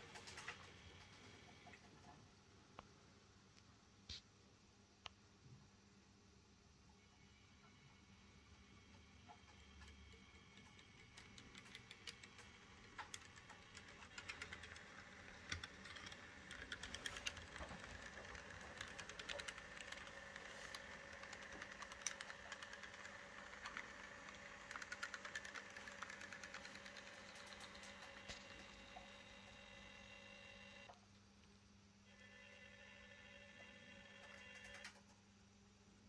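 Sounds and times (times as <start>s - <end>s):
motor and gear whine: 26.1s - 30.9s.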